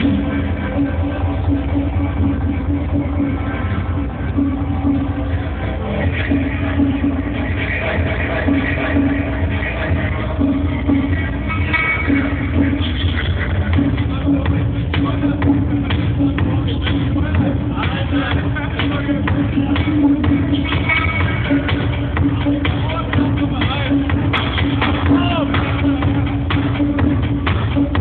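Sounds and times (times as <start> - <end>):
crowd voices: 0.0 - 28.0
heavy bass: 0.0 - 28.0
techno over club sound system: 0.0 - 28.0.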